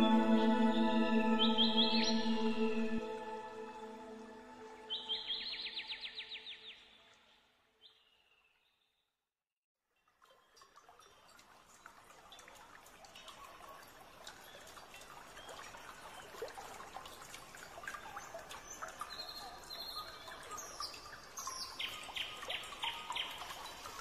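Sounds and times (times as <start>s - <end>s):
birds chirping: 0.0s - 3.8s
trickle of running water: 9.9s - 24.0s.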